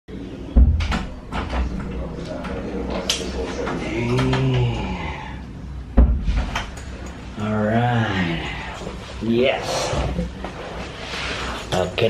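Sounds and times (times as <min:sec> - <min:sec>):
door thump: 0:00.6 - 0:01.7, 0:06.0 - 0:06.6.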